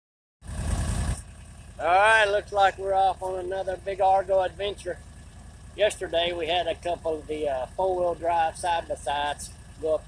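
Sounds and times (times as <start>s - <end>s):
engine idling: 0.4s - 10.0s
man speaking: 1.8s - 5.0s, 5.8s - 10.0s.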